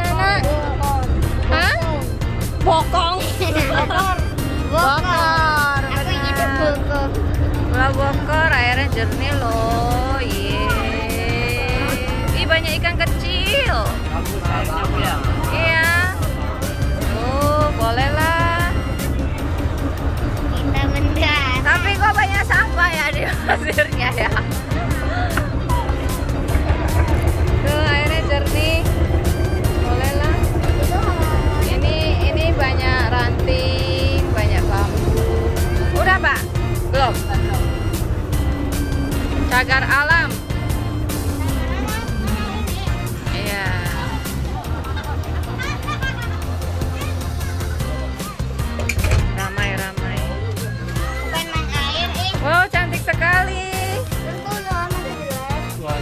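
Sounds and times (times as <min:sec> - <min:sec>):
boat engine rumbling: 0:00.0 - 0:56.0
steady music beat: 0:00.0 - 0:56.0.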